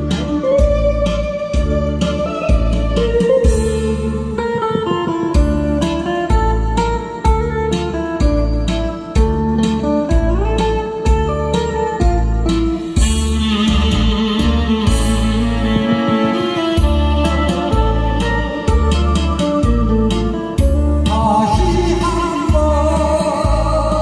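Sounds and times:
karaoke backing track: 0:00.0 - 0:24.0.

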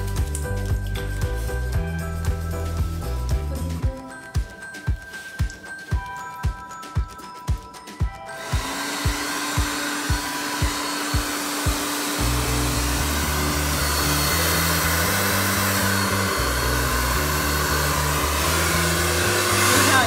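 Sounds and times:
background music with beat: 0:00.0 - 0:20.0
blow dryer running: 0:08.2 - 0:20.0.

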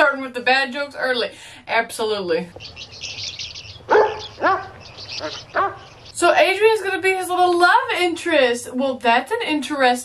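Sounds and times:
birds chirping: 0:00.8 - 0:08.1
small dog yapping: 0:03.9 - 0:05.9.

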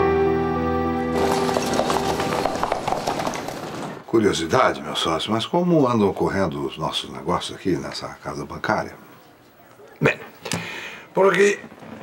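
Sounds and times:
horse hooves clip-clopping: 0:01.1 - 0:04.0
busy noisy background: 0:07.6 - 0:12.0.

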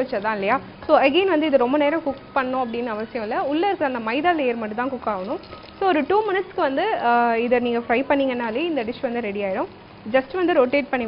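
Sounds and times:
hot oil sizzling: 0:00.0 - 0:11.0
woman speaking: 0:00.0 - 0:11.0.

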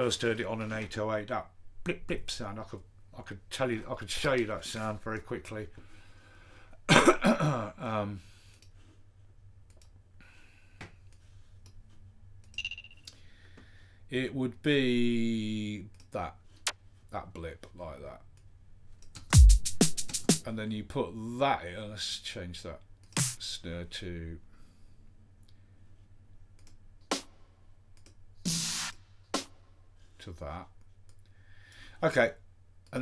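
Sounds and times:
faint mouse clicks: 0:09.7 - 0:10.0
snare drum hits: 0:23.2 - 0:23.4.

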